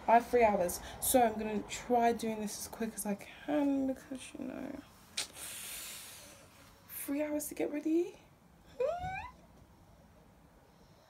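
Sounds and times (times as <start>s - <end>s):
woman humming rising mm: 8.8s - 9.3s.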